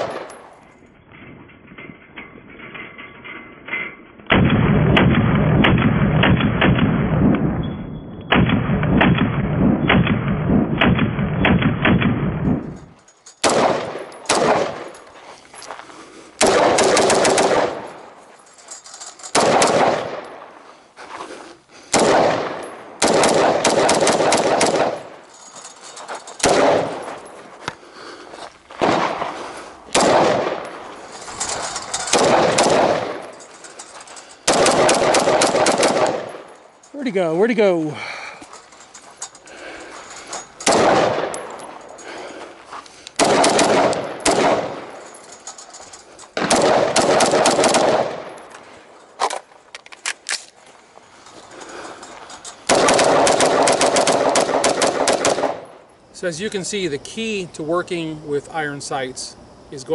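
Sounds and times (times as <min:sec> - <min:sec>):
rifle shots echoing: 0:00.0 - 0:00.5, 0:04.3 - 0:07.6, 0:08.3 - 0:12.8, 0:13.4 - 0:15.1, 0:16.4 - 0:18.2, 0:19.3 - 0:20.6, 0:21.9 - 0:25.3, 0:26.3 - 0:27.4, 0:28.8 - 0:33.6, 0:34.4 - 0:36.6, 0:40.6 - 0:41.9, 0:43.2 - 0:45.2, 0:46.4 - 0:48.6, 0:52.6 - 0:55.9.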